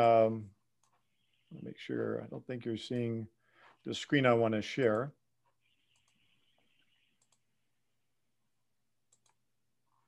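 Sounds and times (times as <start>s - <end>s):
computer mouse clicks: 5.9s - 6.2s, 7.2s - 7.5s, 9.1s - 9.4s.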